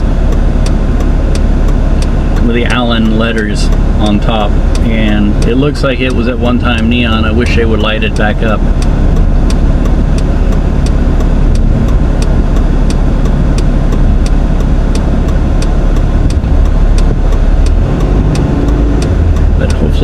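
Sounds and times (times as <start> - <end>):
car engine rumble: 0.0 - 20.0
light regular ticking: 0.0 - 20.0.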